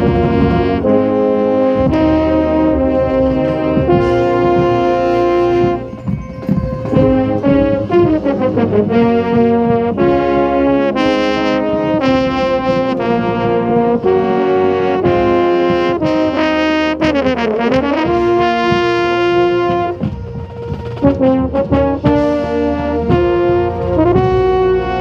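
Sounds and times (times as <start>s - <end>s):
brass line playing: 0.0s - 25.0s
marching baritone held notes: 0.0s - 25.0s.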